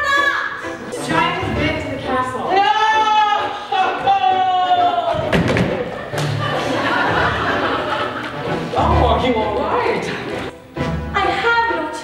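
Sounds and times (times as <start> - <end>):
low accompaniment music: 0.0 - 12.0.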